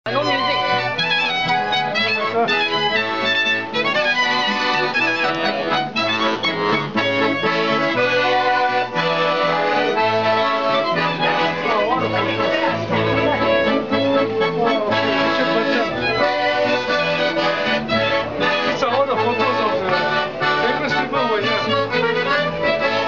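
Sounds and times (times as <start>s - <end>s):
piano accordion: 0.0s - 23.0s
violin melody: 0.0s - 23.0s.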